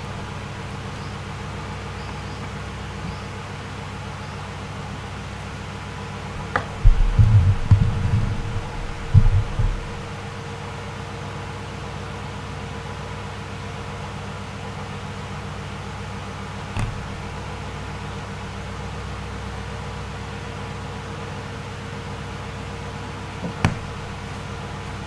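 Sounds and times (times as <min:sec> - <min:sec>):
steady background hum: 0:00.0 - 0:25.0
short knock: 0:06.4 - 0:10.2, 0:16.8 - 0:17.1, 0:23.4 - 0:24.0
low thumps: 0:06.4 - 0:10.5, 0:16.8 - 0:17.4, 0:23.4 - 0:24.2.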